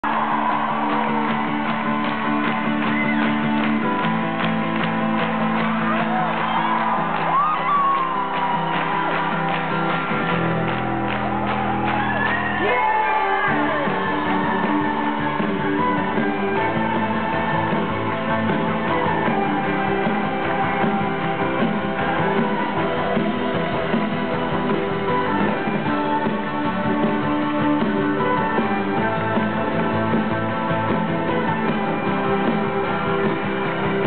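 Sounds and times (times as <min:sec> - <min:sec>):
crowd shouts and whoops: 0:00.0 - 0:04.3, 0:05.5 - 0:23.2
live acoustic band playing: 0:00.1 - 0:34.0.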